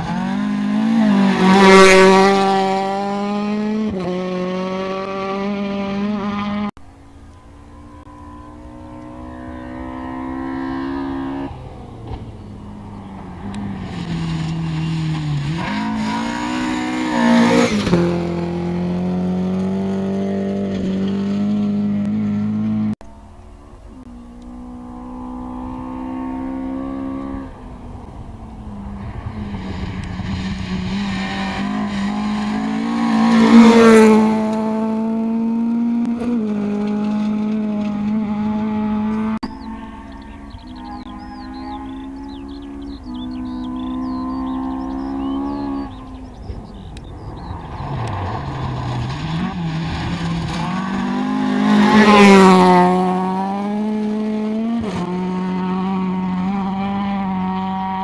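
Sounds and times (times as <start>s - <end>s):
rally car engine accelerating: 0.0s - 58.0s
tyres on gravel: 11.6s - 17.1s.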